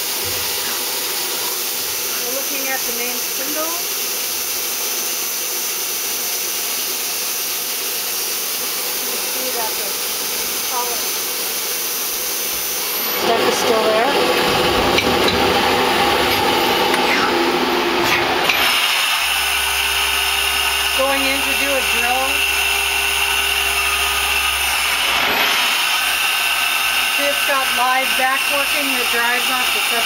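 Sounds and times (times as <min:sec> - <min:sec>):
lathe machine hiss: 0:14.4 - 0:30.0.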